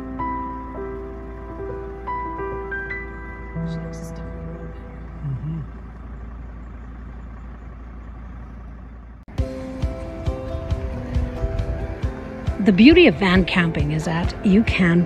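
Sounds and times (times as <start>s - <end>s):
background music with piano-like notes: 0.0s - 4.9s, 9.3s - 15.0s
low rumble: 0.0s - 15.0s
steady outdoor hiss: 9.3s - 15.0s.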